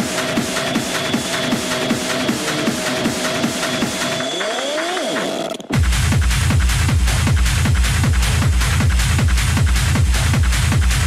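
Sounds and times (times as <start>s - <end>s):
hard techno with pounding kick drum: 0.0s - 11.0s.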